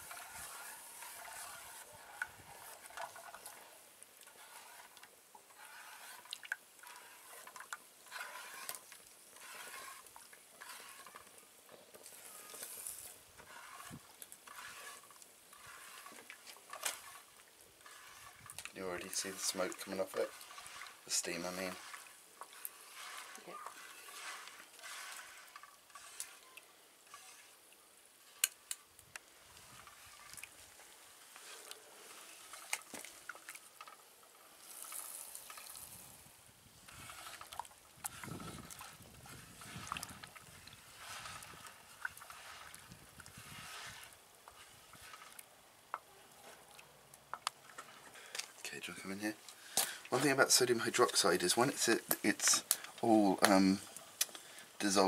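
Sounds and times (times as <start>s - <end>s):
soft sizzling bubbling: 0.0s - 55.0s.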